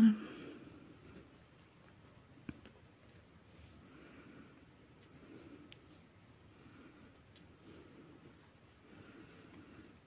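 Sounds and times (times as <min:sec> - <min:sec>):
faint rustling of a hat: 0:00.4 - 0:10.0.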